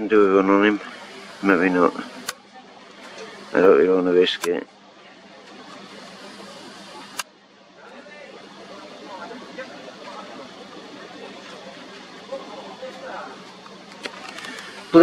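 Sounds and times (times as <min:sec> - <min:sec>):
distant voices: 0:00.0 - 0:15.0
low outdoor background hum: 0:00.0 - 0:15.0.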